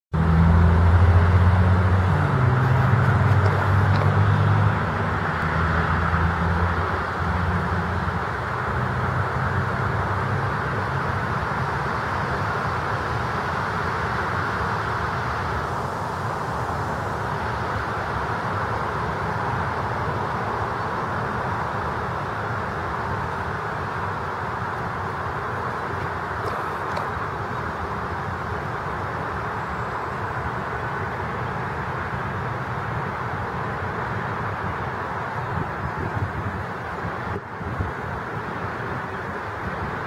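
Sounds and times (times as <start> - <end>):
background traffic noise: 0.1 - 40.0
low engine hum: 0.1 - 40.0.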